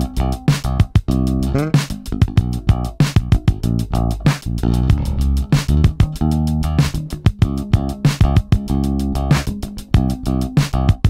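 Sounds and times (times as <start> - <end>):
drum machine beat: 0.0 - 11.0
electric bass funk line: 0.0 - 11.0.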